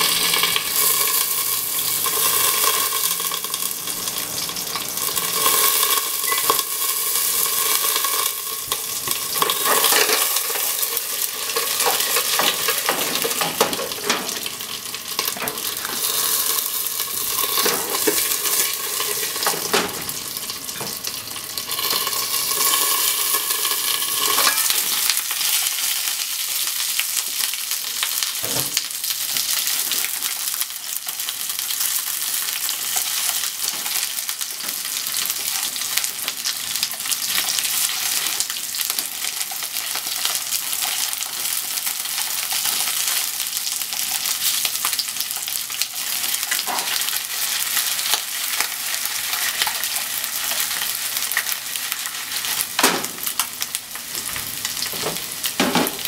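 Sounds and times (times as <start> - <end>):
chicken sizzling in oil: 0.0 - 56.0.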